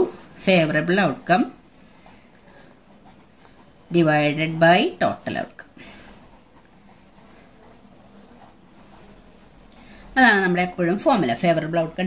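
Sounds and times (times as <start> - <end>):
pen writing on paper: 1.7 - 10.0.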